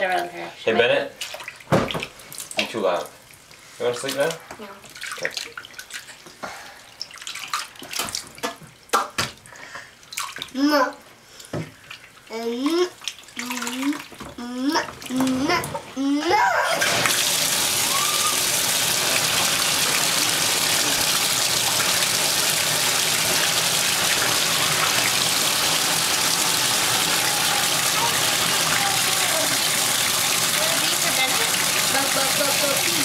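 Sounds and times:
tap water running into bathtub: 1.2s - 33.0s.

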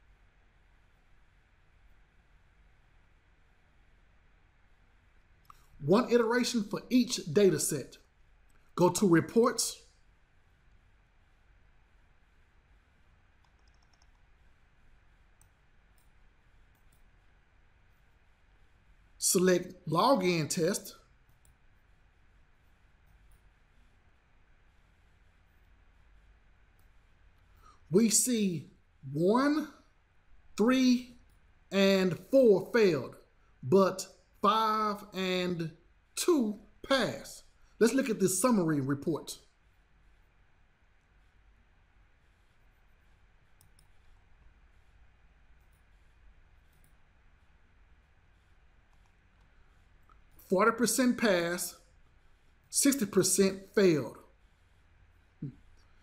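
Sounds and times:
low room hum: 0.0s - 56.0s
computer mouse clicks: 13.4s - 14.6s, 15.2s - 17.2s, 42.4s - 45.0s, 45.6s - 47.1s, 48.4s - 50.4s.

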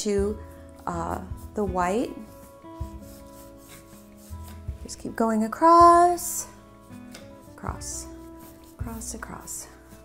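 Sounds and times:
soft background music: 0.0s - 10.0s
paintbrush rubbing on canvas: 0.2s - 10.0s.

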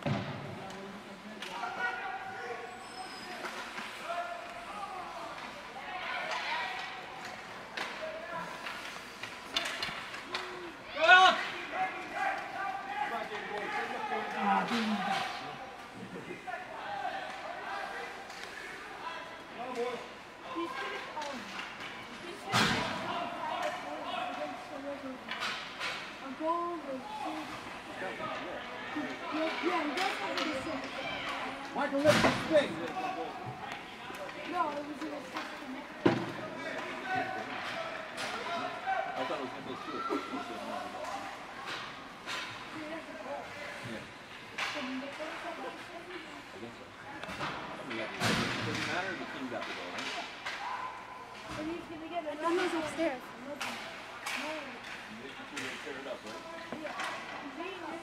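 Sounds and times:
spectators calling out and chattering: 0.0s - 58.0s.

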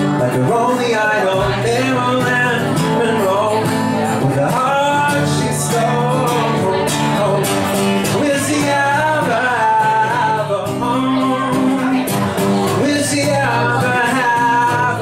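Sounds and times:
acoustic guitar strumming: 0.0s - 15.0s
man singing into microphone: 0.0s - 15.0s.

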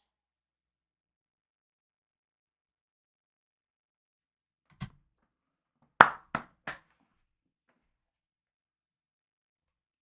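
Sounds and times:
sharp hand claps: 6.0s - 6.9s.

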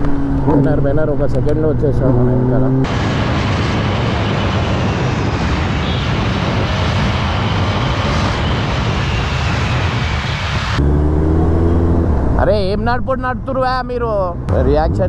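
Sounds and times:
wind rushing on microphone: 0.0s - 10.9s
motorcycle engine and road noise: 0.0s - 15.0s.

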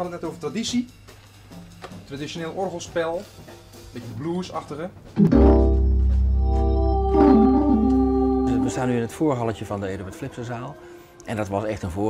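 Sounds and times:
blues organ playing: 5.2s - 9.6s.

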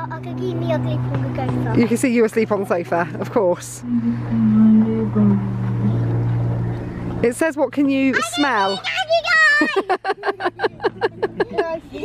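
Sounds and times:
man humming low drone: 3.7s - 6.8s.

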